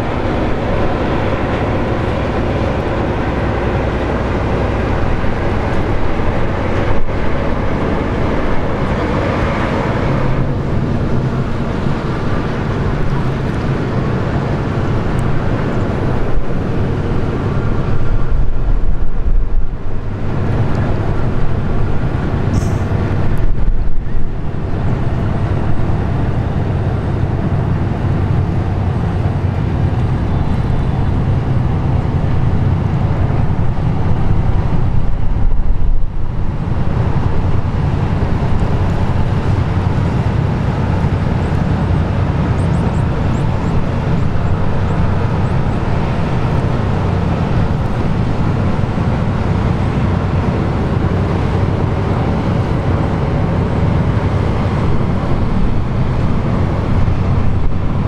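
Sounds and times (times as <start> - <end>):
ship diesel engines droning: 0.0 - 58.0.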